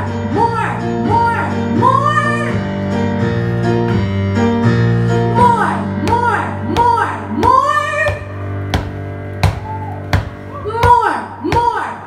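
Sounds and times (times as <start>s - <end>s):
percussive knock: 7.4s - 11.0s.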